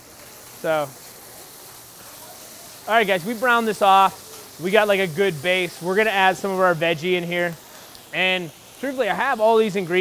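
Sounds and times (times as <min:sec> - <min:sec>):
ground beef sizzling in a skillet: 0:00.0 - 0:10.0.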